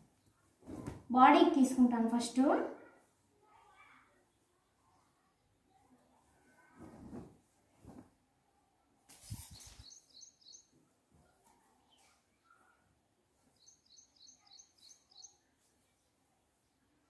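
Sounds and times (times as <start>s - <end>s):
cloth flapped onto concrete floor: 0.6s - 1.1s, 6.6s - 8.2s
bird chirping: 9.3s - 10.8s, 13.5s - 15.5s.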